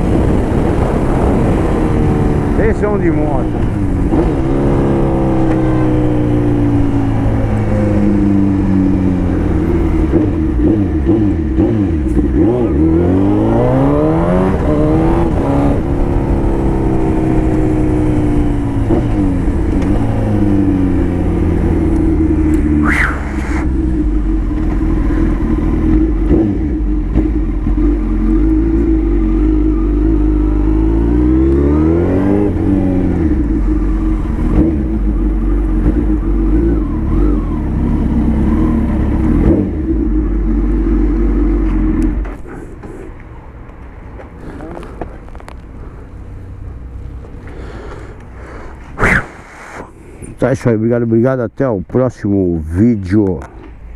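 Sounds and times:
motorcycle engine revving: 0.0s - 43.2s.

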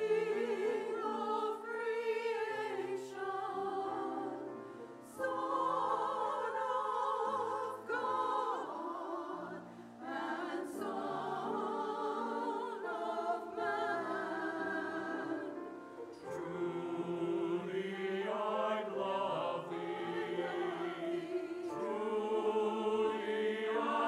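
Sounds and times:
choir singing: 0.0s - 24.0s
piano: 0.0s - 24.0s.

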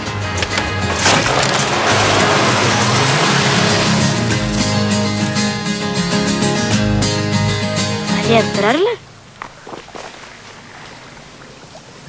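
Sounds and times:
background music: 0.0s - 9.0s
car engine running: 0.4s - 6.9s.

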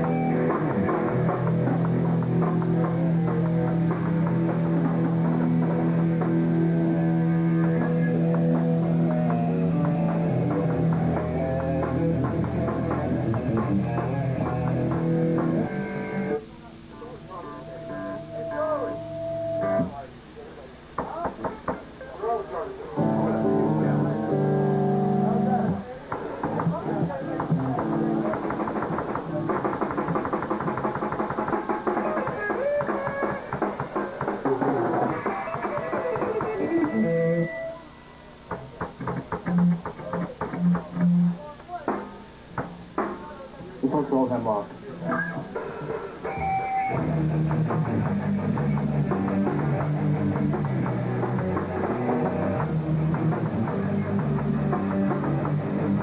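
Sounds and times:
hardcore band playing live: 0.0s - 16.4s, 26.4s - 37.7s, 45.1s - 56.0s
held electric guitar notes: 0.0s - 20.1s, 23.0s - 37.9s, 45.0s - 56.0s.

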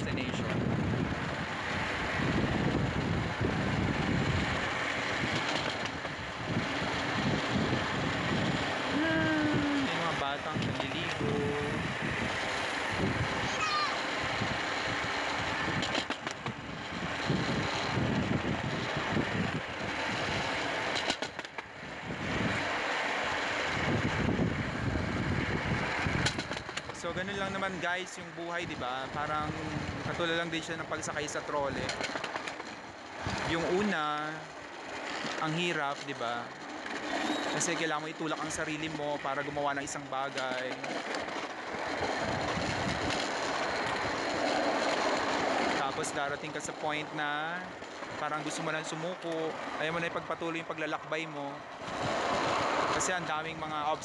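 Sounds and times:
trolley wheels rumbling on rails: 0.0s - 54.0s
wheels clacking: 0.2s - 54.0s.

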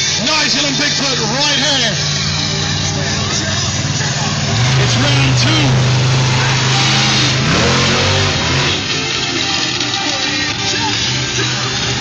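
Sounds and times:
music playing: 0.0s - 12.0s
monster truck engine revving: 0.4s - 9.8s.

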